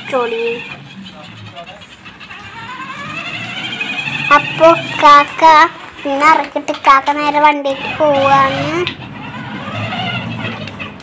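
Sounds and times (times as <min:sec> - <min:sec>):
electric motorbike whine: 0:00.0 - 0:11.0.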